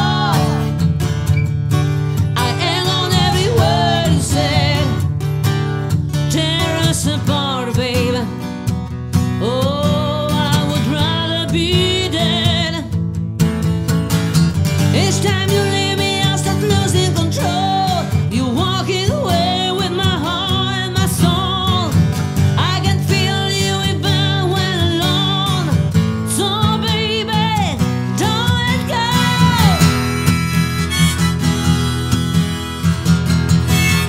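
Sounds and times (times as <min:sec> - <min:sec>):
strummed acoustic guitar: 0:00.0 - 0:34.0
harmonica playing: 0:29.4 - 0:34.0.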